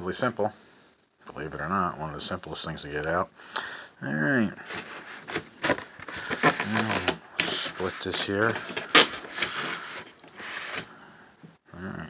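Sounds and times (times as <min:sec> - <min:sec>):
styrofoam squeaky scraping: 0:04.7 - 0:10.9.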